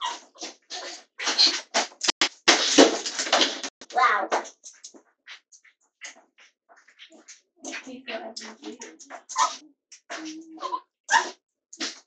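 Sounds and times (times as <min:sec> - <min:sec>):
small dog yipping: 0:08.9 - 0:09.6, 0:10.2 - 0:11.3.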